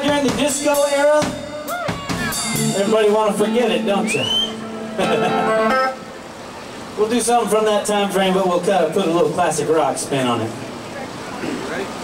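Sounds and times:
electric guitar chord: 2.4s - 6.4s.

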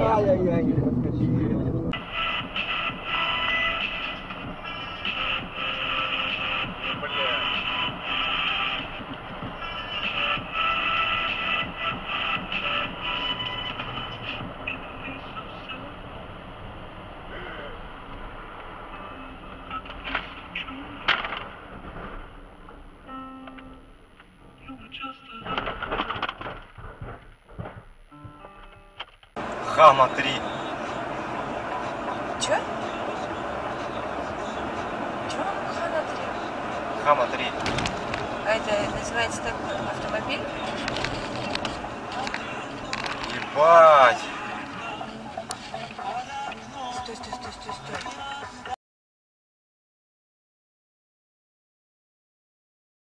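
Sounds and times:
music: 1.8s - 15.7s, 18.9s - 21.1s, 23.0s - 25.8s, 28.1s - 29.1s, 39.8s - 48.8s.

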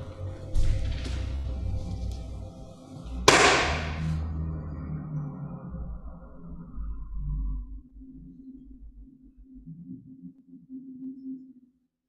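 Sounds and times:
deep rumble: 0.0s - 9.8s
steady low hum: 0.0s - 10.5s.

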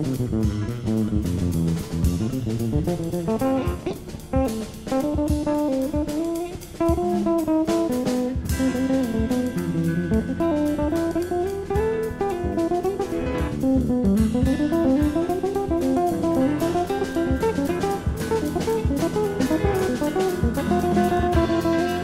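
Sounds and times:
bass: 0.0s - 22.0s
drum kit: 0.0s - 22.0s
plucked string melody: 0.0s - 22.0s.

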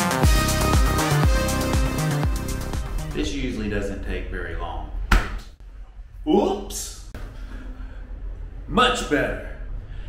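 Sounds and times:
man speaking: 6.2s - 7.1s.

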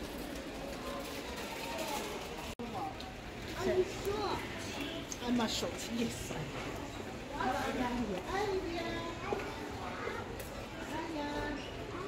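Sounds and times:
warehouse store background noise: 0.0s - 12.0s.

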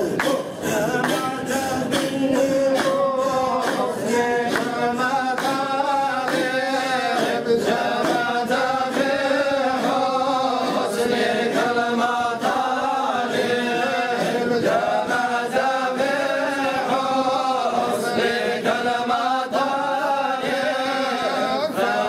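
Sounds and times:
men chanting in unison: 0.0s - 22.0s.

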